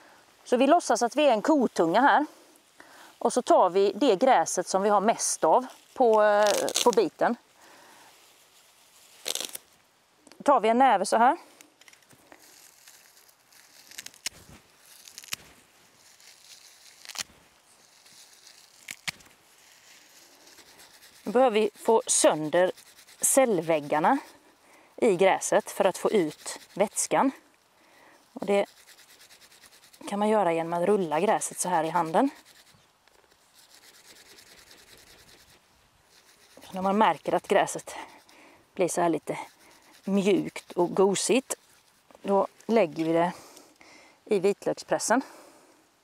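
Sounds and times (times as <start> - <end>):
grass stems rustling: 0.9 - 9.9, 11.4 - 43.8
grass stems snapping: 6.1 - 7.1, 9.2 - 9.7, 11.6 - 17.4, 18.0 - 19.4.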